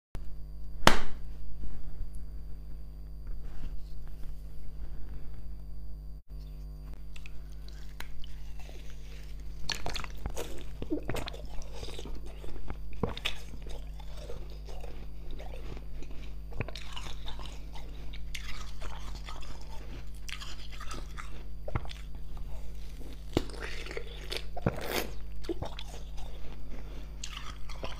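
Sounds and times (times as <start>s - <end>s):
low steady hum: 0.2s - 27.9s
ice being chewed: 6.4s - 27.9s.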